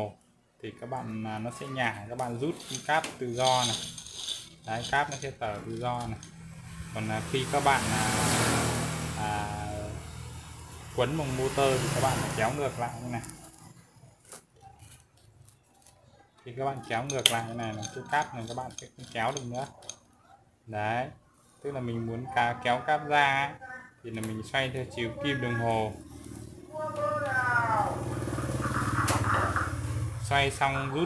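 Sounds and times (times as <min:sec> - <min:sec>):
vehicle engine running: 0:04.8 - 0:13.9, 0:25.8 - 0:31.0.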